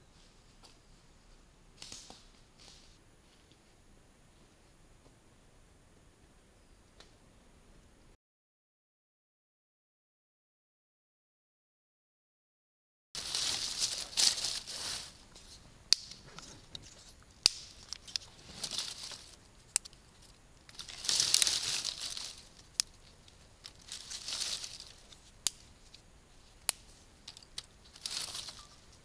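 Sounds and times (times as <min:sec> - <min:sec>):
dry leaves rustling: 0:13.2 - 0:29.0
twigs snapping clicks: 0:15.9 - 0:26.0, 0:26.6 - 0:28.8.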